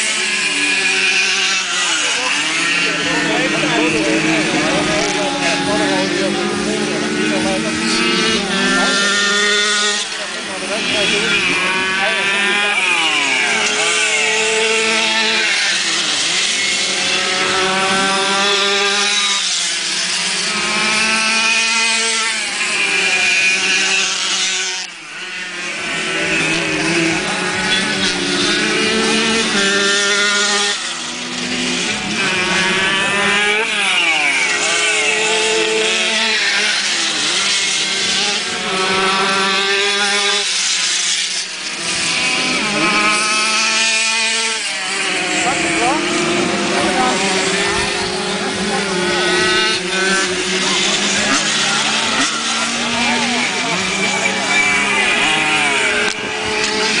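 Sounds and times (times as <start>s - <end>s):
racing motorcycle engines revving: 0.0s - 57.0s.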